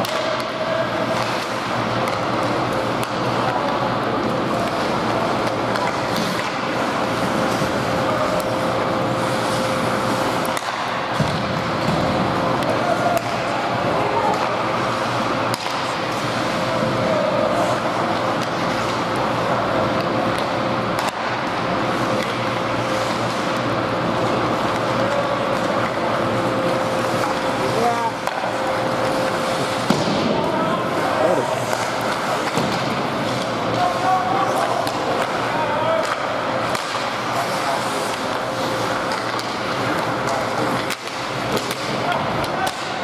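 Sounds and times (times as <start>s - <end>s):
sticks and puck clicking on ice: 0.0s - 8.6s, 31.4s - 43.0s
constant hum: 0.0s - 43.0s
ice rink crowd din: 0.0s - 43.0s.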